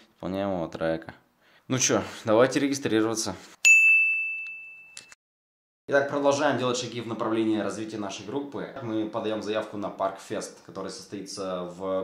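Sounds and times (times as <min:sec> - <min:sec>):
bright bell-like ding: 0:03.6 - 0:05.2.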